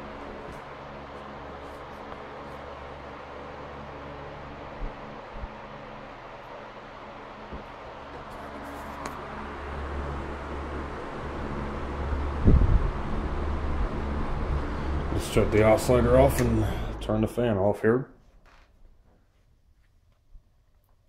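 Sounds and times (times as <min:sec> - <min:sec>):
electric fan running: 0:00.0 - 0:18.2.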